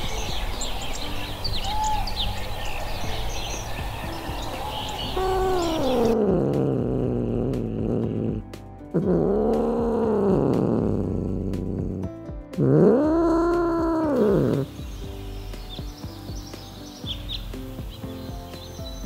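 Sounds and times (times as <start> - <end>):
cat meowing: 5.2 - 6.8, 9.0 - 12.0, 12.6 - 14.7.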